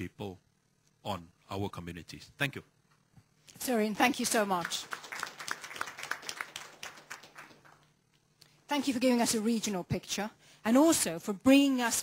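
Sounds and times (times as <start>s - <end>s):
audience applause: 4.5s - 7.9s.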